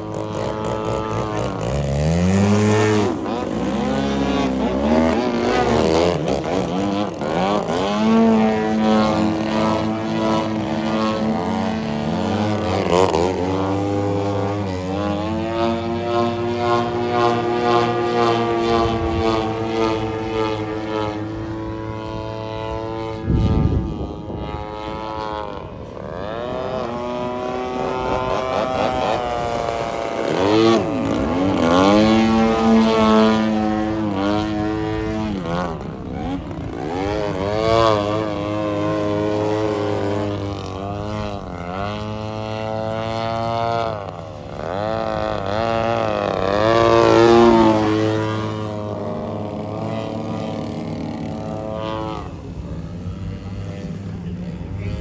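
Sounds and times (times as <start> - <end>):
model plane engine: 0.0 - 55.0.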